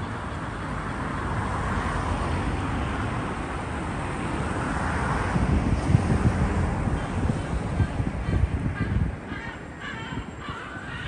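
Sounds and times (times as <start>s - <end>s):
passing road traffic: 0.0s - 11.0s.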